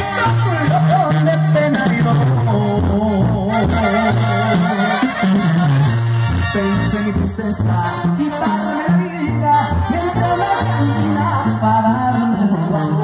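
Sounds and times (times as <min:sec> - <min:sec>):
brass and reed melody: 0:00.0 - 0:13.0
tuba bass line: 0:00.0 - 0:13.0.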